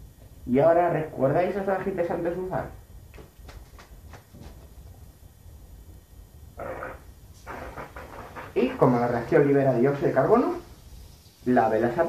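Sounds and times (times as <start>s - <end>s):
brief hiss: 6.6s - 9.2s.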